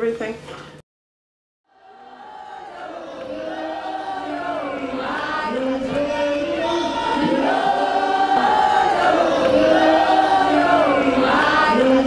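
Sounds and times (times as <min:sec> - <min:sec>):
choir singing in harmony: 0:01.7 - 0:12.0.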